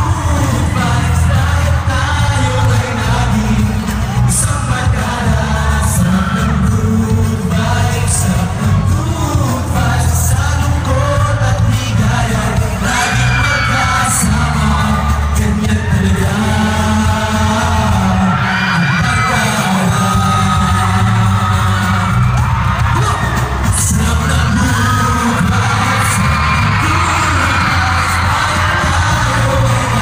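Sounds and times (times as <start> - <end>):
heavy steady bass: 0.0 - 30.0
male vocal group singing: 0.0 - 30.0.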